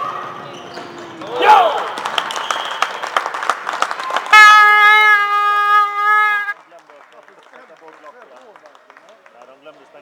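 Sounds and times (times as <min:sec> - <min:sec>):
arena horn blast: 0:04.2 - 0:06.6.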